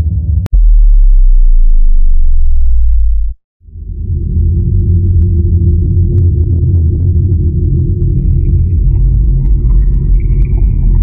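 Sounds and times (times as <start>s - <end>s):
deep rumbling drone: 0.0s - 11.0s
bass-heavy electronic music: 0.2s - 11.0s.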